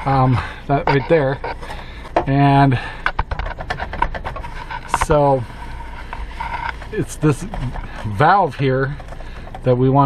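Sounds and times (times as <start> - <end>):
hands rubbing on pipe: 0.0 - 2.2, 3.3 - 9.6.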